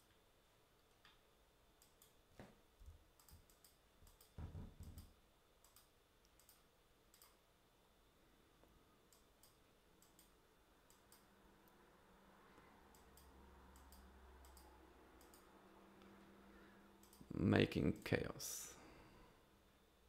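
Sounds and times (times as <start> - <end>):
faint low hum: 0.0 - 20.0
computer mouse clicks: 1.8 - 2.2, 3.1 - 7.4, 9.1 - 11.8, 12.9 - 16.1, 17.0 - 17.3.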